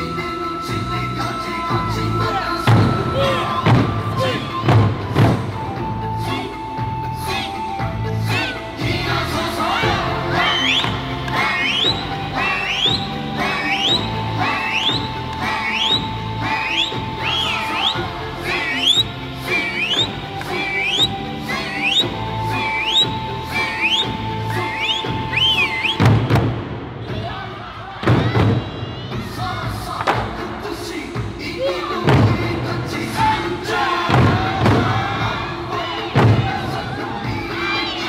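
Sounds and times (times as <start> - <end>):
person singing: 0.0 - 26.0, 29.1 - 38.0
barrel drums beaten: 2.6 - 5.8, 25.5 - 27.0, 32.0 - 35.4, 36.0 - 37.0
short rising calls: 10.3 - 26.1.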